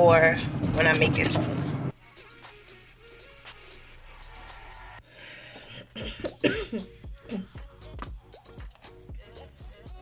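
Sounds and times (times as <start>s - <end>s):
woman coughing: 5.9s - 7.6s.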